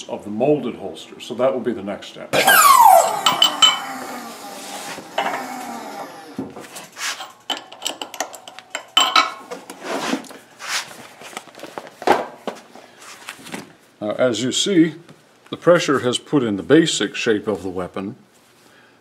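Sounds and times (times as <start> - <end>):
knocks clinks and scrapes: 2.5 - 10.3.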